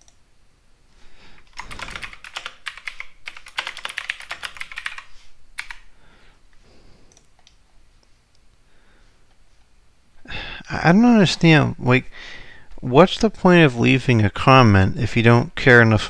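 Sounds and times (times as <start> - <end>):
computer keyboard typing: 1.4 - 5.8.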